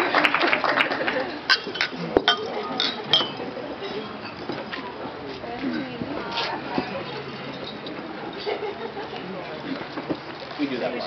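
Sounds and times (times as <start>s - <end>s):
glasses clinking: 1.5s - 4.6s, 6.8s - 8.6s.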